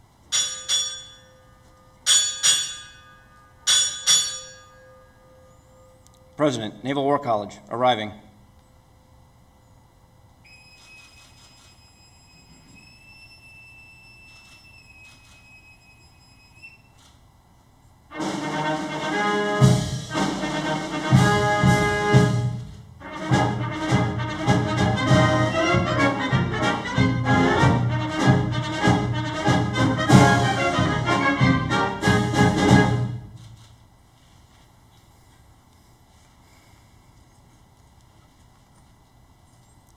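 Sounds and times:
boatswain's pipe whistle: 10.5 - 17.0
brass band playing: 18.1 - 33.4.

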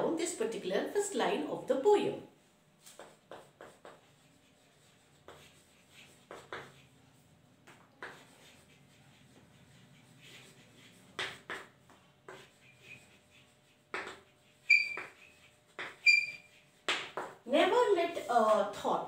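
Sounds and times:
chalk tapping and scraping on blackboard: 2.8 - 19.0.

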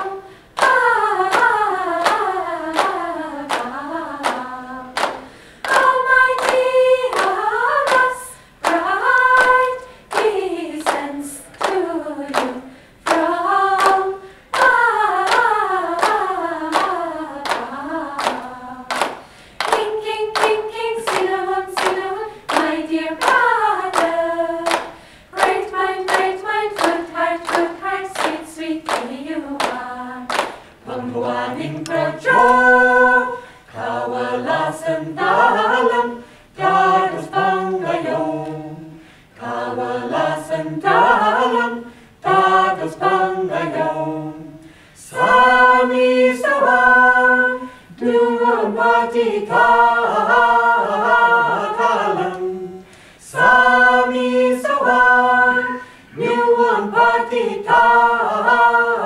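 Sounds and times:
group singing unaccompanied: 0.0 - 59.0
rhythmic hand-clapping: 0.0 - 59.0.

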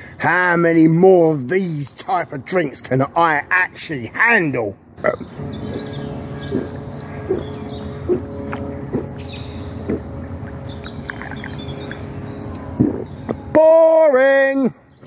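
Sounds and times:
low drone: 4.8 - 13.7.

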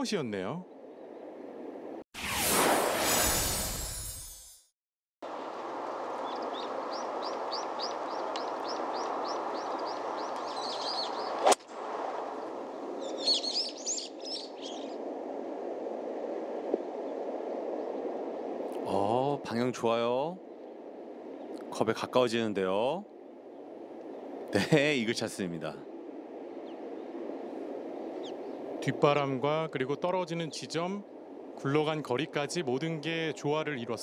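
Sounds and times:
loud rushing whoosh: 2.2 - 4.4
birds chirping: 6.1 - 11.5, 13.0 - 15.0, 20.4 - 29.4.

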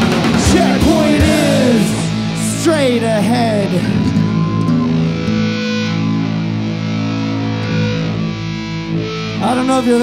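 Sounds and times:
distorted electric guitars ringing chord: 0.0 - 10.0.

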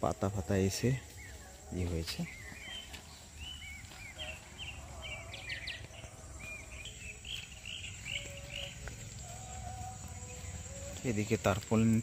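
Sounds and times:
high-pitched insect drone: 0.0 - 12.0
small birds chirping: 0.0 - 12.0.

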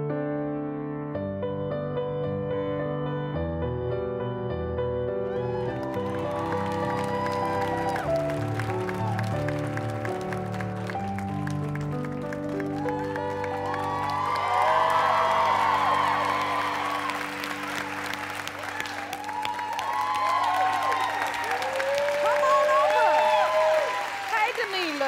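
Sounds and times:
music of long held chords: 3.4 - 22.0
audience cheering and applauding: 5.3 - 25.0.

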